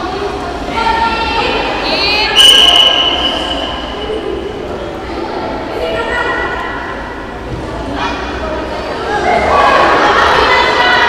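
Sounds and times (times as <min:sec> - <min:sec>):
crowd voices: 0:00.0 - 0:11.0
high-pitched whistle blast: 0:02.4 - 0:04.3.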